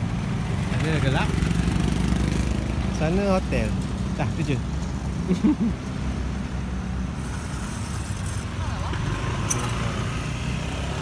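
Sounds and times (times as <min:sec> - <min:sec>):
car engines rumbling: 0:00.0 - 0:11.0.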